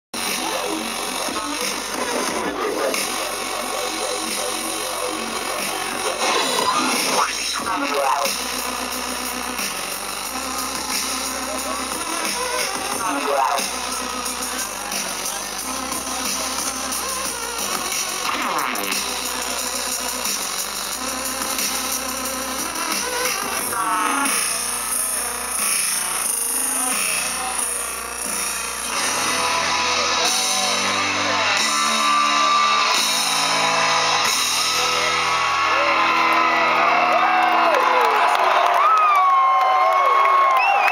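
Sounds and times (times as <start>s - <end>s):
synth sweep: 0.2s - 36.3s
electronic bass music: 0.2s - 38.0s
crowd voices: 0.2s - 40.9s.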